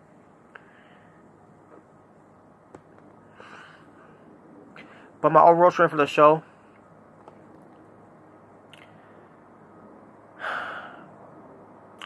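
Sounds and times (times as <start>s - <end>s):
man breathing through mouth: 10.4s - 11.2s.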